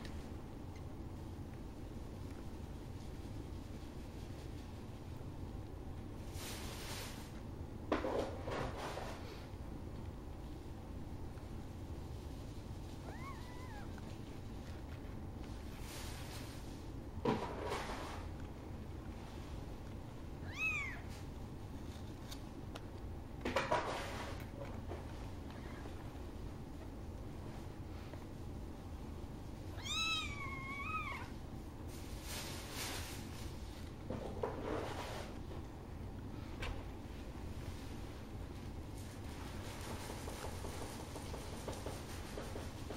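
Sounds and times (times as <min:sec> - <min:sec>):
soft rustling: 0:10.4 - 0:17.0
kitten mewing: 0:13.0 - 0:14.1, 0:20.4 - 0:21.1.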